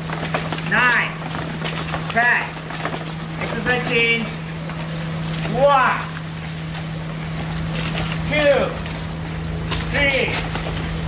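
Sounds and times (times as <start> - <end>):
outdoor background noise: 0.0 - 11.0
steady low hum: 0.0 - 11.0.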